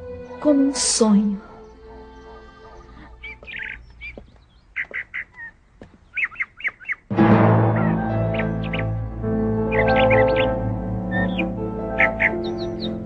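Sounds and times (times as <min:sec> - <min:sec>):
background music: 0:00.0 - 0:03.9, 0:07.1 - 0:13.0
birds chirping: 0:00.0 - 0:13.0
soundtrack music: 0:07.1 - 0:13.0.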